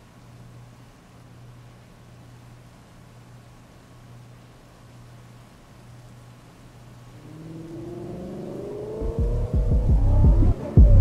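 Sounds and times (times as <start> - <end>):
engine revving: 7.2 - 11.0.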